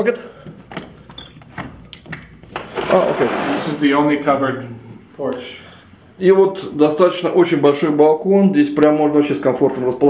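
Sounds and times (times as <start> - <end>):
door handle and latch rattling: 0.7 - 2.5.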